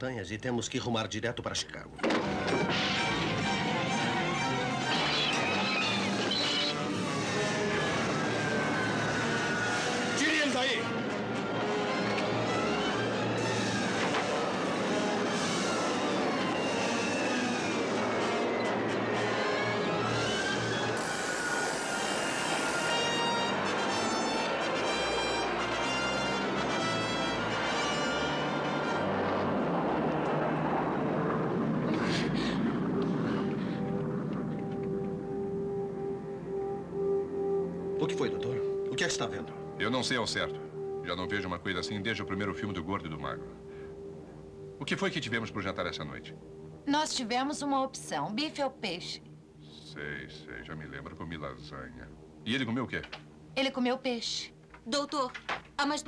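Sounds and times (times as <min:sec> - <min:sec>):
dramatic orchestral music: 0:02.1 - 0:46.9
passengers screaming and shouting: 0:04.0 - 0:33.6.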